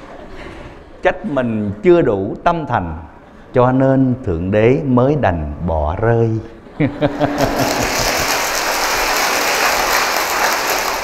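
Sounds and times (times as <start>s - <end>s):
audience applauding: 7.0s - 11.0s.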